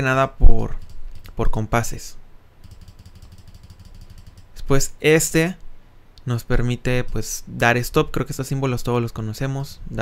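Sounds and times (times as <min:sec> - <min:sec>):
faint low hum: 0:00.0 - 0:10.0
rapid faint ticking: 0:00.6 - 0:01.4, 0:02.6 - 0:04.9, 0:06.9 - 0:07.5.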